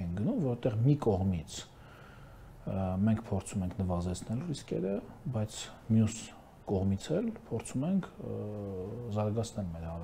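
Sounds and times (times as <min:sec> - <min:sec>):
man speaking: 0:00.0 - 0:01.8, 0:02.6 - 0:10.0.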